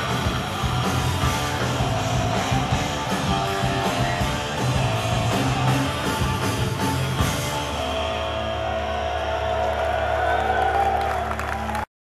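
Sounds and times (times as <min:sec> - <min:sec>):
rock band holding final chord: 0:00.0 - 0:11.2.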